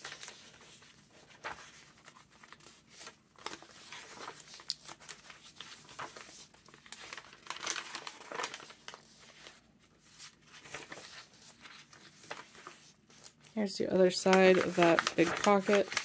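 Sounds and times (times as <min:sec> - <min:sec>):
paper pages rustling as turned: 0:00.0 - 0:16.0.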